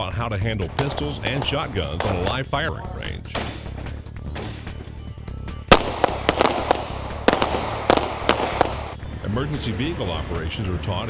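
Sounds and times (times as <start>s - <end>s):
background music: 0.0s - 11.0s
pistol shots: 0.6s - 2.6s, 5.7s - 9.0s.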